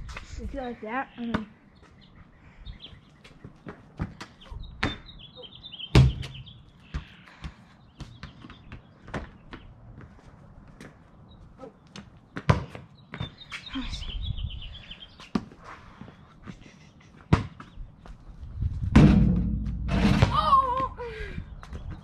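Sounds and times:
bird chirping: 0.5 - 9.8, 11.1 - 15.4
basketball bouncing on concrete: 3.6 - 5.1, 5.9 - 10.1, 11.9 - 13.4, 17.2 - 17.7, 18.8 - 21.0
ball striking a hoop: 18.9 - 20.5.

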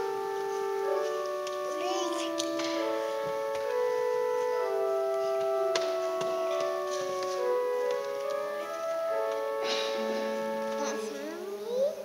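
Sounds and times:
church organ chords: 0.0 - 12.0.

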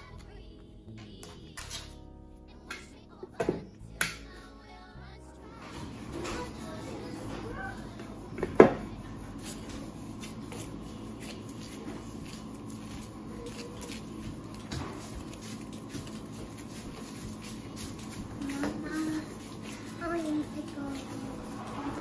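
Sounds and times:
gloved hands kneading dough: 5.8 - 22.0.

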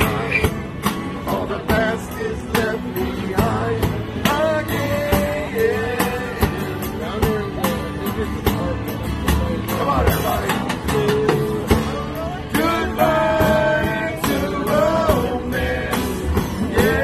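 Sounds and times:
light drum beat: 0.0 - 17.0
strummed acoustic guitars: 0.0 - 17.0.

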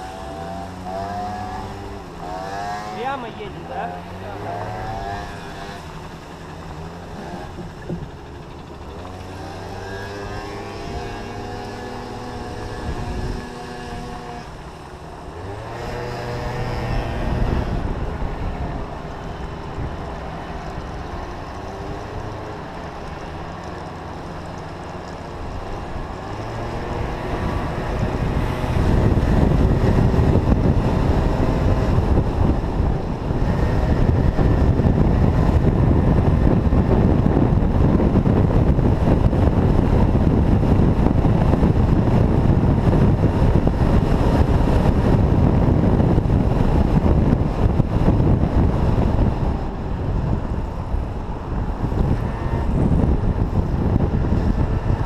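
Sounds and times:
scooter engine: 0.0 - 55.0
wind buffeting microphone: 0.0 - 55.0.

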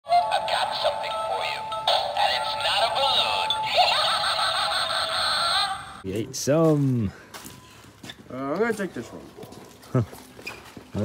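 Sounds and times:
tinny synthetic voice from speaker: 0.1 - 6.0.

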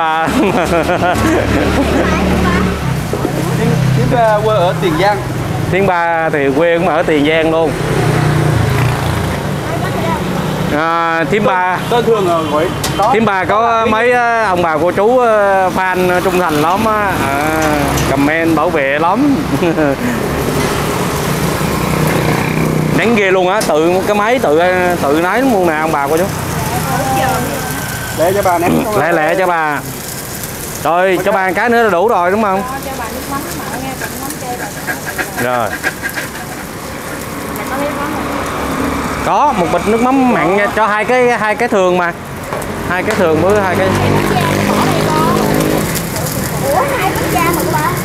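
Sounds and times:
roadside street din: 0.0 - 48.0
pancakes sizzling in pans: 0.5 - 5.8, 15.3 - 48.0
faint voices talking: 9.0 - 14.8, 23.6 - 48.0
person speaking: 23.8 - 30.0.

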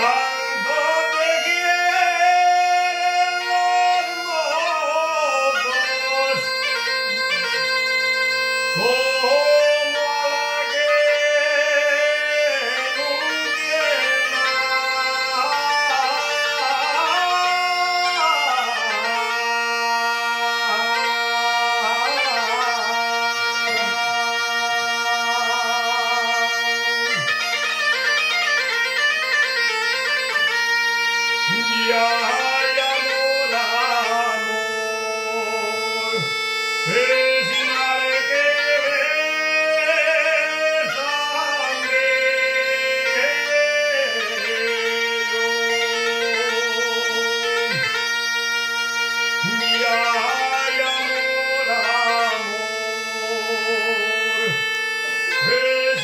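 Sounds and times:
bagpipe melody over drone: 0.0 - 56.0.

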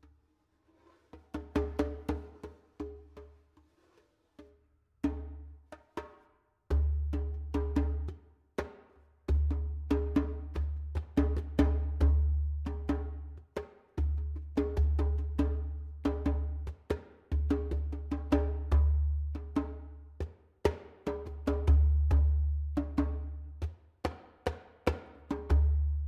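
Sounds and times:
djembe played by hand: 0.8 - 26.0.

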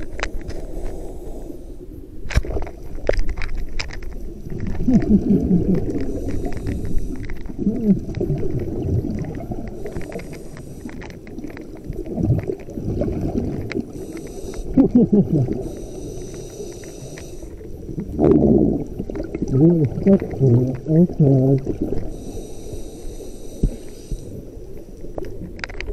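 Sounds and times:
hissing regulator inhalations: 0.4 - 1.9, 5.6 - 7.6, 9.6 - 11.9, 13.7 - 17.9, 22.0 - 24.6
burbling exhaled bubbles: 2.4 - 22.7.

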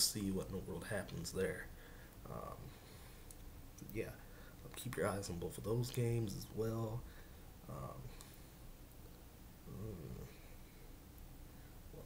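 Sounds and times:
man murmuring: 9.7 - 10.4.

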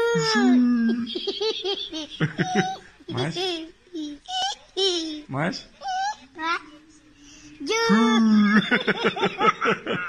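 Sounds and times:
young child laughing: 0.0 - 3.3.

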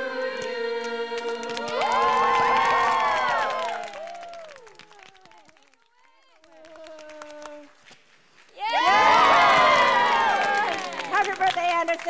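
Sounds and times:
overlapping voices: 0.0 - 7.8, 8.5 - 12.0
handclaps: 0.4 - 12.0.

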